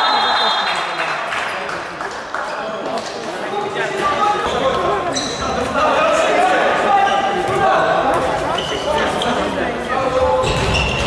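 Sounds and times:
voices shouting in a hall: 0:00.0 - 0:01.8, 0:02.4 - 0:11.0.

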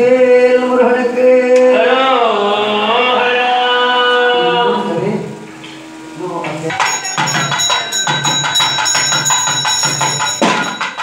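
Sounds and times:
sung chant: 0:00.0 - 0:08.0
metal percussion clanging: 0:06.4 - 0:11.0.

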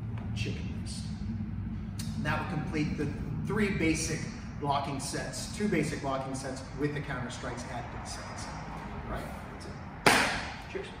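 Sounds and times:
fist slapping into palm: 0:10.0 - 0:10.5.

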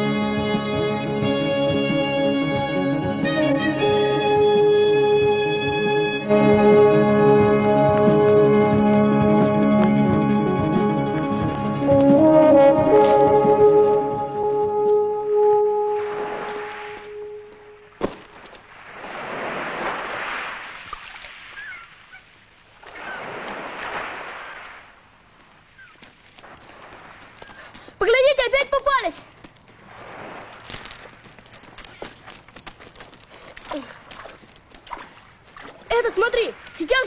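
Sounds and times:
held brass note: 0:00.0 - 0:18.0
sea washing on pebbles: 0:17.9 - 0:21.8, 0:22.8 - 0:25.0, 0:26.1 - 0:28.0, 0:29.6 - 0:36.9
footsteps on stones: 0:18.0 - 0:18.7, 0:29.2 - 0:35.8
gull cries: 0:21.6 - 0:22.3.

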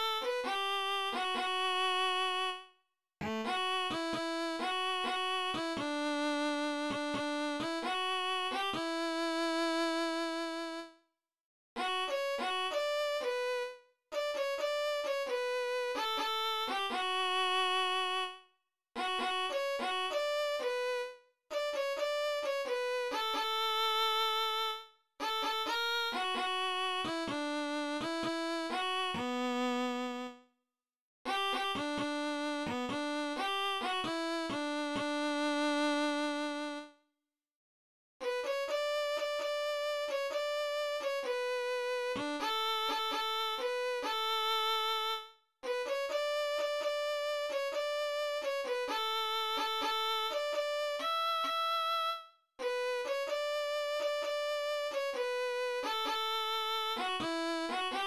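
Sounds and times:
solo violin melody: 0:03.2 - 0:10.9, 0:31.3 - 0:36.9, 0:38.2 - 0:58.0.

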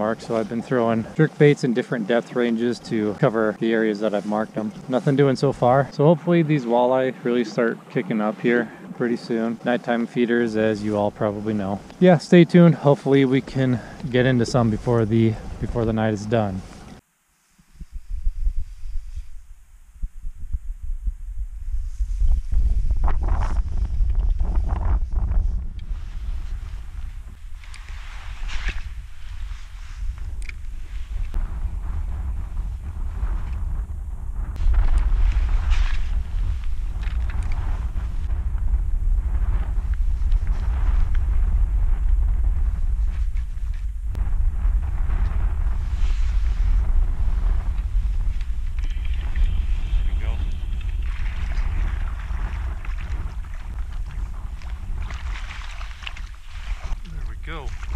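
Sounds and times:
wind buffeting microphone: 0:00.0 - 0:17.0, 0:17.6 - 0:57.9
choppy water splashing: 0:48.2 - 0:57.9.

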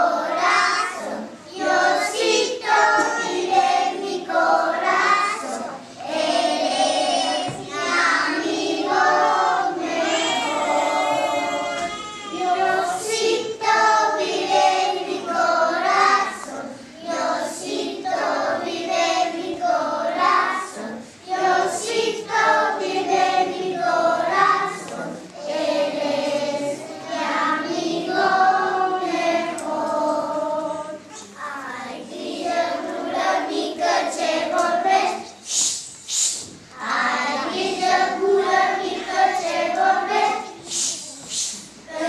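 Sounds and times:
young children singing: 0:00.0 - 0:42.0.

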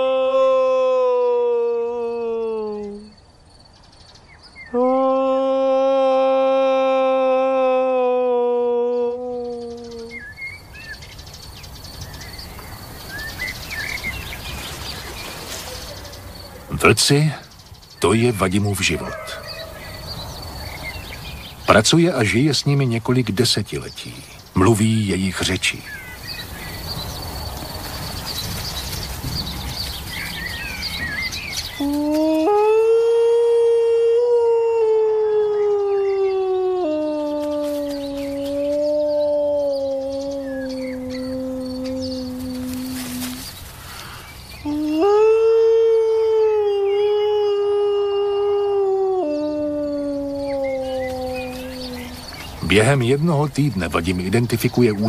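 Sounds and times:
man imitating wolf howl: 0:00.0 - 0:03.2, 0:04.7 - 0:10.2, 0:18.2 - 0:19.9, 0:31.8 - 0:43.4, 0:44.6 - 0:52.9.

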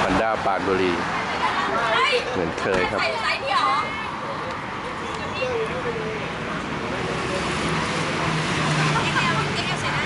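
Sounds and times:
roadway traffic noise: 0:00.0 - 0:10.0
vehicle engine humming: 0:00.0 - 0:10.0.

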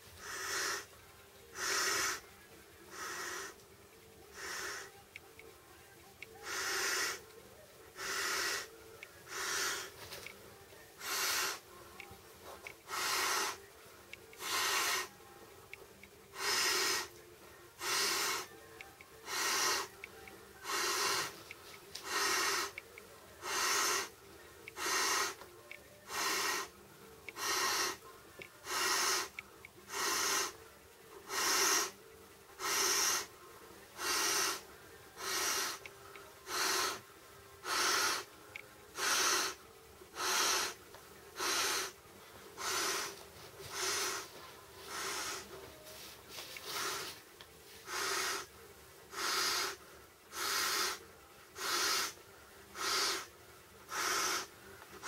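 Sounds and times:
person blowing into air bed valve: 0:12.9 - 0:13.6, 0:14.4 - 0:15.1, 0:16.4 - 0:17.1, 0:17.8 - 0:18.5, 0:19.2 - 0:19.9, 0:20.6 - 0:21.4, 0:26.1 - 0:26.7, 0:31.3 - 0:32.0, 0:32.6 - 0:33.3, 0:34.0 - 0:34.6, 0:36.5 - 0:37.0, 0:39.0 - 0:39.6, 0:40.2 - 0:40.8, 0:42.6 - 0:45.6, 0:47.8 - 0:48.5, 0:49.1 - 0:51.0, 0:51.6 - 0:52.2, 0:52.8 - 0:53.3, 0:53.9 - 0:54.5.

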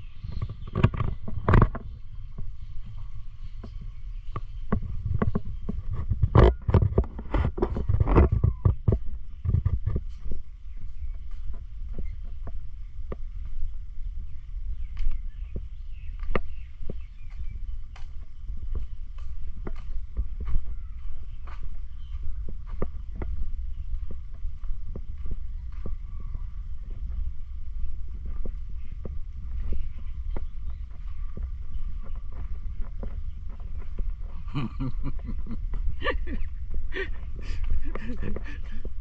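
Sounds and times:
footsteps on hard ground: 0:00.0 - 0:39.0
wind rumble on microphone: 0:00.0 - 0:39.0.

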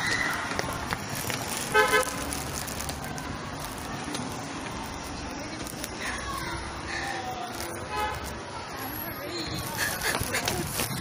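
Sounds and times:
street noise: 0:00.0 - 0:11.0
vehicle horn toots: 0:01.7 - 0:02.2.

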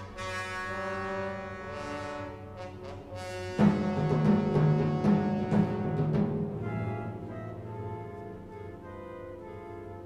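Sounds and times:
orchestral brass chords: 0:00.0 - 0:10.0.

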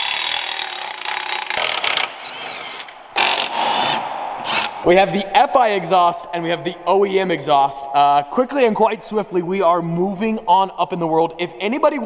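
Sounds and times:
power tool running: 0:00.0 - 0:04.8.

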